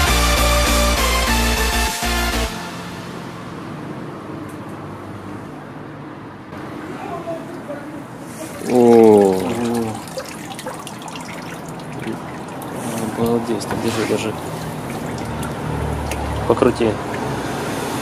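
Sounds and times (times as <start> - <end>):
water sloshing in a tub: 7.5 - 18.0.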